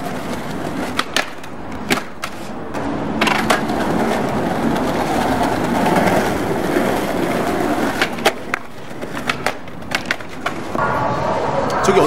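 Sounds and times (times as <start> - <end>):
skateboard clacks: 0.0 - 10.8
skateboard wheels rolling on concrete: 0.0 - 11.2.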